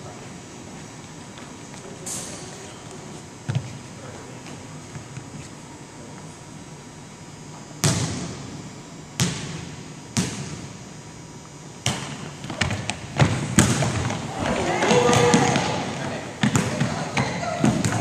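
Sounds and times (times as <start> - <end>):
volleyball smacks echoing in hall: 7.8 - 8.6, 9.2 - 10.8, 11.8 - 18.0.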